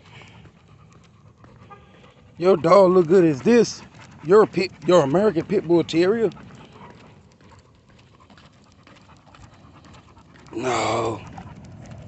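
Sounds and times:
dog panting faintly: 0.0 - 12.0
dog steps ticking: 0.1 - 12.0.

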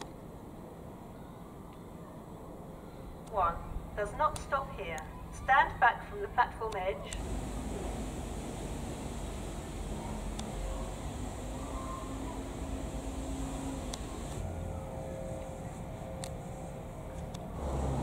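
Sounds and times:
distant engine drone: 3.6 - 18.0.

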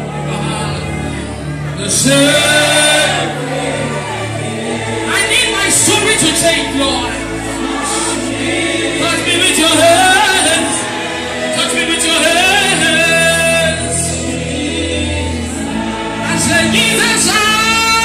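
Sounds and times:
gospel singing with accompaniment: 0.0 - 18.0.

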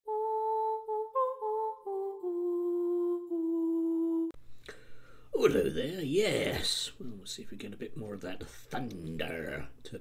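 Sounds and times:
person humming a melody: 0.0 - 4.4.

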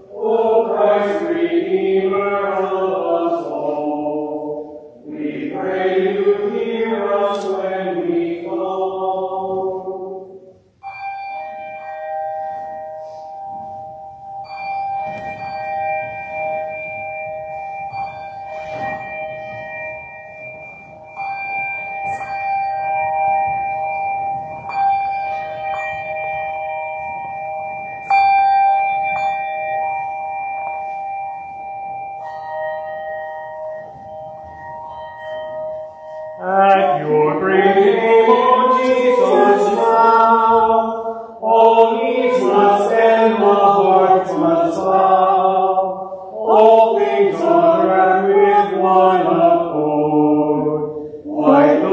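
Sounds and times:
voices singing a hymn: 0.0 - 10.5, 36.4 - 51.9.

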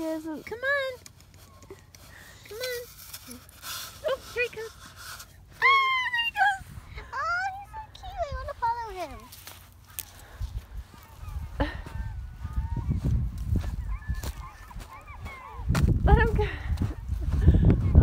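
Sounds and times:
children calling excitedly: 5.5 - 10.1, 13.8 - 16.3.

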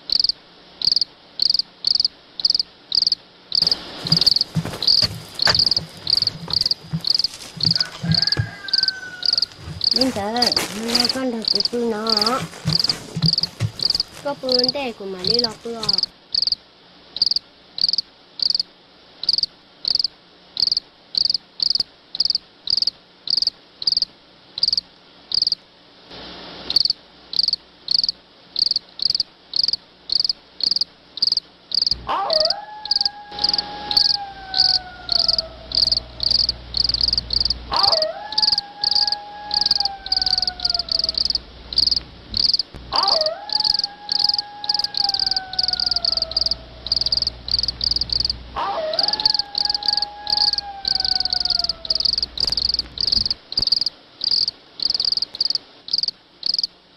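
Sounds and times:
low hum: 0.0 - 16.1, 31.9 - 53.8
crickets chirping: 0.0 - 26.0, 26.6 - 56.9
long wailing calls: 0.2 - 16.1, 31.8 - 54.4.

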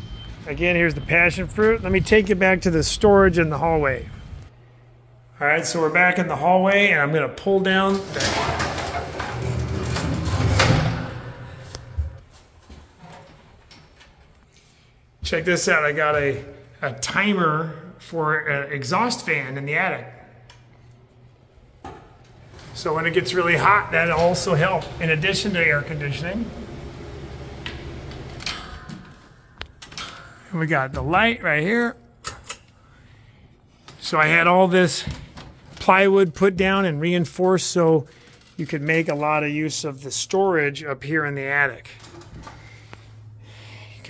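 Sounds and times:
exhaust fan humming: 0.1 - 12.4, 18.2 - 36.8
attic ladder sliding and rumbling: 7.8 - 14.4
ladder knocks and clicks: 7.9 - 12.2.

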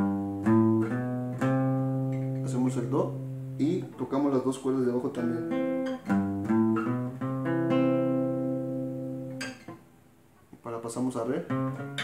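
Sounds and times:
acoustic guitar plucked notes: 0.0 - 9.9, 11.4 - 12.0.

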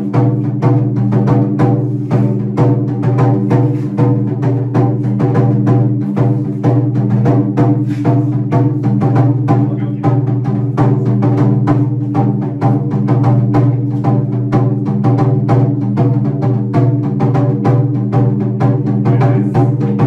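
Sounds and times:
taiko drum fast rhythm: 0.0 - 20.0.

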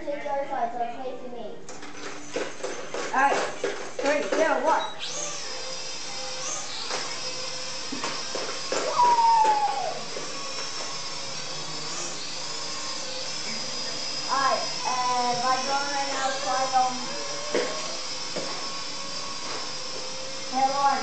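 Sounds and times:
drone propellers whining: 4.5 - 21.0
falling tone: 8.9 - 10.2
voices: 14.3 - 17.8.

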